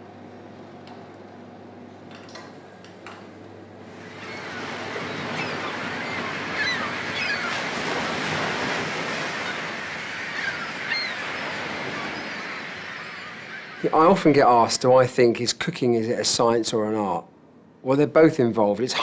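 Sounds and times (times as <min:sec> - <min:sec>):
surf washing in: 0:03.8 - 0:15.4
gull cries: 0:04.0 - 0:14.8.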